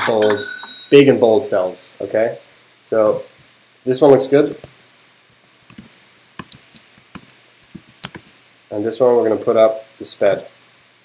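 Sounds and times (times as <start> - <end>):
computer keyboard typing: 4.4 - 8.4.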